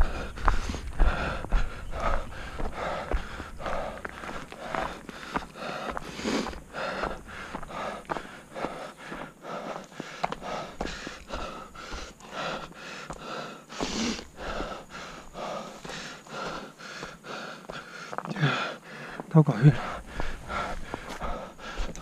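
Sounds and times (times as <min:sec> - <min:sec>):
footsteps on dirt path: 0:00.0 - 0:22.0
person breathing heavily: 0:00.0 - 0:22.0.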